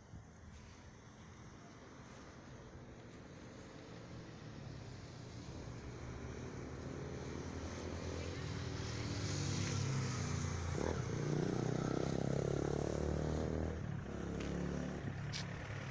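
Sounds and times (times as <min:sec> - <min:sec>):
vehicle driving past: 0:03.0 - 0:15.9.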